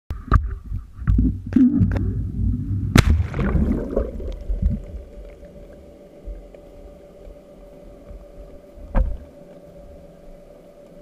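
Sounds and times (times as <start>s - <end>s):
mid-pitched hum: 0.1s - 11.0s
underwater low rumble: 0.1s - 11.0s.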